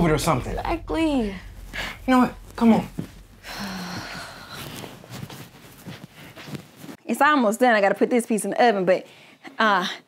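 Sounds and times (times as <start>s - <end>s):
bedding and clothes rustling: 1.1s - 7.4s
footsteps on floor: 1.5s - 7.0s.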